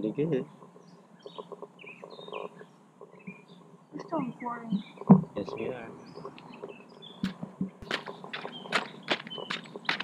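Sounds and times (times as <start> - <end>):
birds chirping: 0.0 - 10.0.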